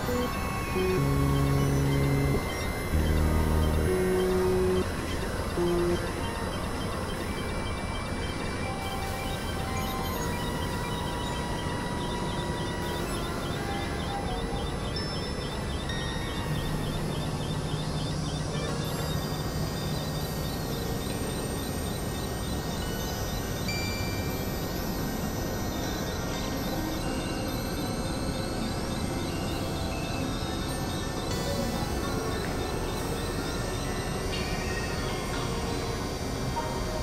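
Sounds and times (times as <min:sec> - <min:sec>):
short held synth tones: 0:00.0 - 0:06.4
dense synthesizer noise: 0:00.0 - 0:37.0
low held tone: 0:00.0 - 0:37.0.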